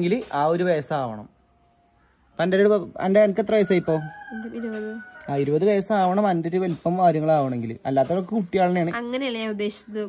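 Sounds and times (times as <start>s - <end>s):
rooster crowing: 3.4s - 5.9s.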